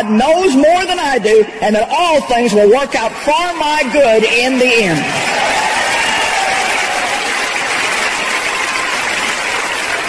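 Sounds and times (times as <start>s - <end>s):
audience applauding: 3.2s - 10.0s.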